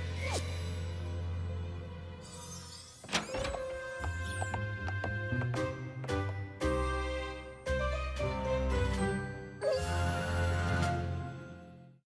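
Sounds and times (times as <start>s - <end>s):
cartoon background music: 0.0s - 12.0s
door opening sound effect: 2.9s - 5.1s.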